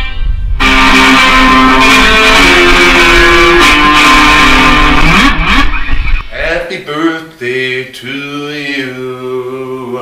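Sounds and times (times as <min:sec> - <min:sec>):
electric guitar notes: 0:00.0 - 0:06.4.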